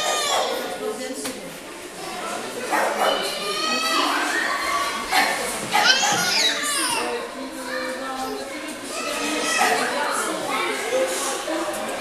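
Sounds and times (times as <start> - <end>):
shrill cries: 0.0 - 0.8, 3.1 - 5.0, 5.7 - 7.2
children shouting and playing: 0.0 - 12.0.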